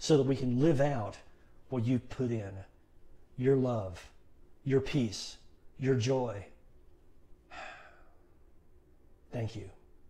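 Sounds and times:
man sighing breath: 0:07.5 - 0:08.2.

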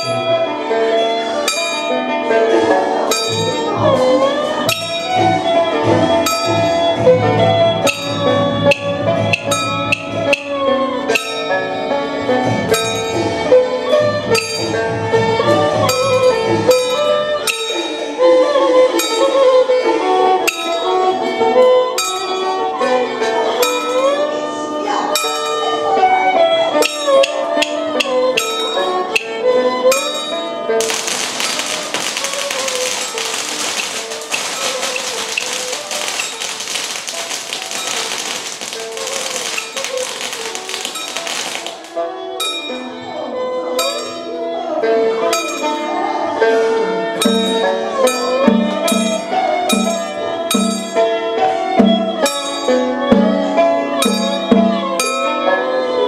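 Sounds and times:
sharp percussion strokes: 0:30.8 - 0:42.0.

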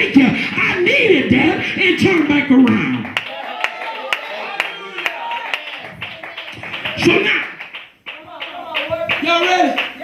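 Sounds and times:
rhythmic hand-clapping: 0:02.2 - 0:10.0.

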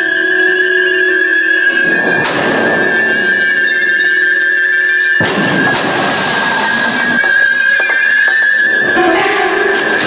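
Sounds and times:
steady high drone: 0:00.0 - 0:07.9
sudden burst of noise: 0:05.2 - 0:07.2.

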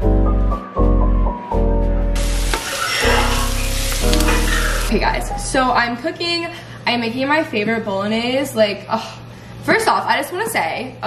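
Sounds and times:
background music: 0:00.0 - 0:05.8
sauce sizzling in a pan: 0:02.2 - 0:04.9.

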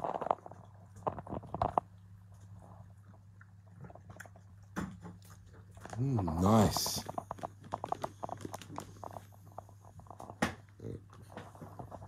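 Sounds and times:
dog chewing and crunching treat: 0:00.0 - 0:12.0
faint low hum: 0:00.0 - 0:12.0.

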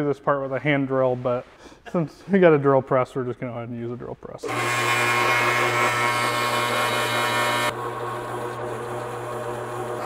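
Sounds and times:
drill bit cutting steel: 0:04.4 - 0:10.0
drill press motor humming: 0:04.4 - 0:10.0.

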